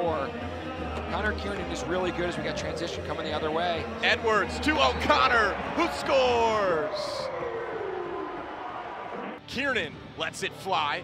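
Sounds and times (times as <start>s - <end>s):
goal siren winding down: 6.5s - 9.2s.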